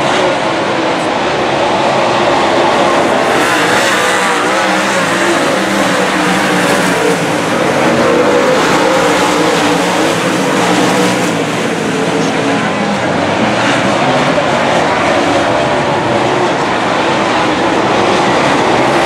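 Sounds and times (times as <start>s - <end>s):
race car engines: 0.0s - 19.0s.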